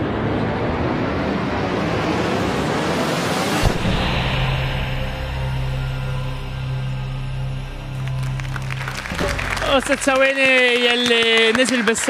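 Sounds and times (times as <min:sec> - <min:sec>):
steady rushing noise: 0:00.0 - 0:10.2
low steady tone: 0:03.7 - 0:10.0.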